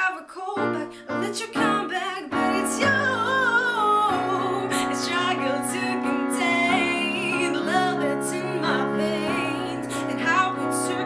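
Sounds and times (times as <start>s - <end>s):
woman singing: 0.0s - 11.0s
keyboard piano chords: 0.5s - 11.0s.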